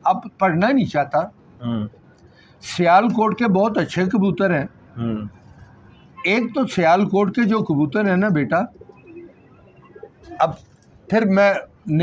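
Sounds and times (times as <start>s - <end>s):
pigeons cooing: 8.6s - 10.7s.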